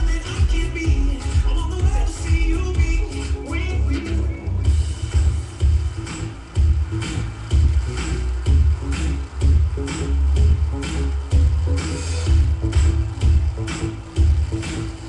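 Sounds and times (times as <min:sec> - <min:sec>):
person singing: 0:00.0 - 0:04.7
electronic dance music: 0:00.0 - 0:15.0.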